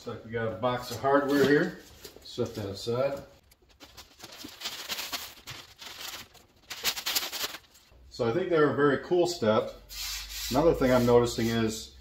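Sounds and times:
plastic wrapping crinkling: 1.3s - 7.9s.

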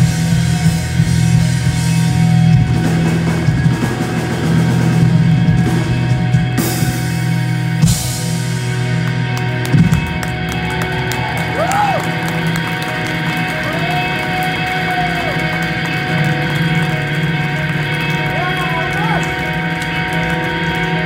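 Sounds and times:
electric guitar feedback tones: 0.0s - 21.0s.

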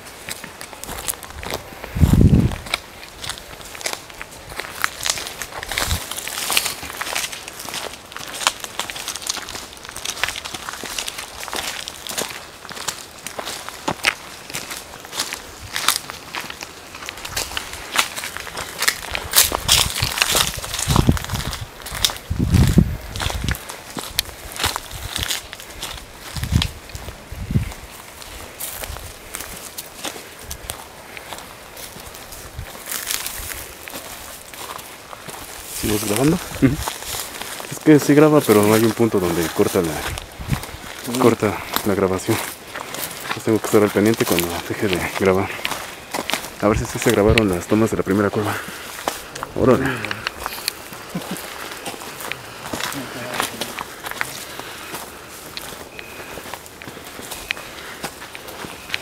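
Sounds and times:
footsteps crunching dry leaves: 0.0s - 59.0s.

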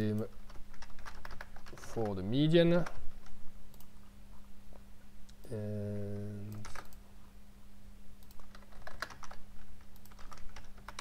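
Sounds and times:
computer keyboard typing: 0.0s - 3.9s, 6.5s - 7.0s, 8.2s - 11.0s.

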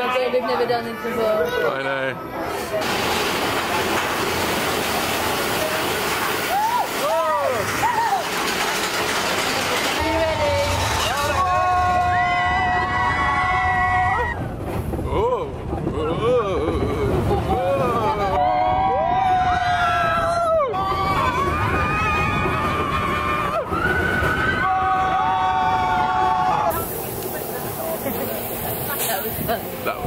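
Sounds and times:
roller coaster train rumbling on track: 0.0s - 30.0s
riders screaming and whooping: 6.4s - 8.6s, 9.9s - 14.5s, 16.0s - 26.9s.

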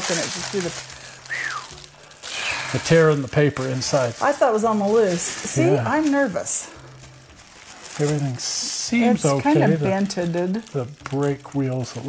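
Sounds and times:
plastic wrapping rustling: 0.0s - 12.0s
person speaking: 5.5s - 6.1s, 8.9s - 10.1s.

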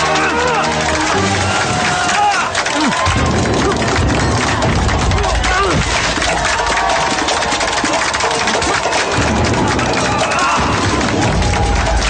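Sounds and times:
crowd cheering and shouting: 0.0s - 12.0s
film score with fast beat: 2.8s - 12.0s.

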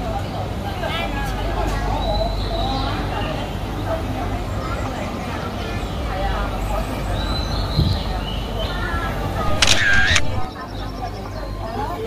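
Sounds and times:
people chatting outdoors: 0.0s - 12.0s
camera shutter sound: 9.4s - 10.5s.

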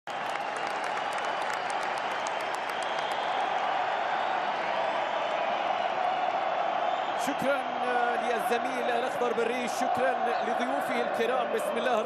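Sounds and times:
sharp claps: 0.1s - 4.7s
stadium crowd noise: 0.1s - 12.0s.

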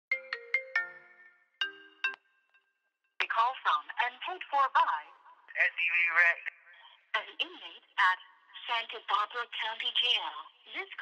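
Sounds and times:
phone ringtone chimes: 0.1s - 2.4s.

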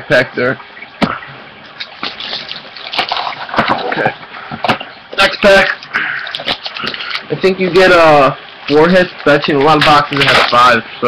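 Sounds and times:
plastic wrapper crinkling: 9.2s - 10.7s.

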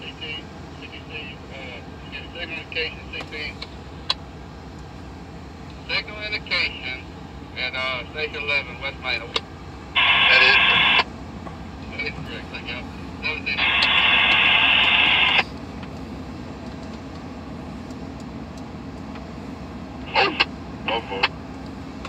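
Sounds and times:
clipped radio voice: 0.0s - 3.6s, 5.8s - 7.0s, 7.6s - 9.4s, 10.0s - 11.1s, 11.8s - 15.4s, 20.0s - 21.4s
radio static hiss: 0.0s - 3.7s, 5.9s - 7.0s, 7.6s - 9.4s, 10.0s - 11.1s, 11.8s - 15.5s, 20.0s - 21.4s
diesel locomotive idling: 0.0s - 22.0s.

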